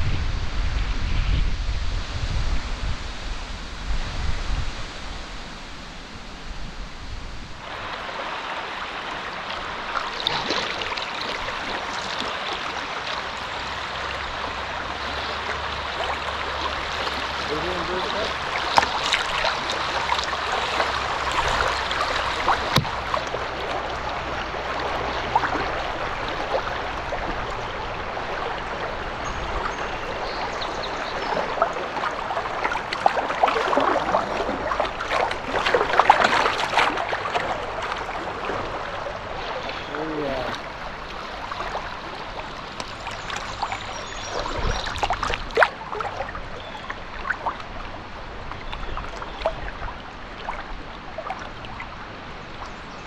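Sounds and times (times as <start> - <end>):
river water rushing over riffles: 1.9 - 53.0.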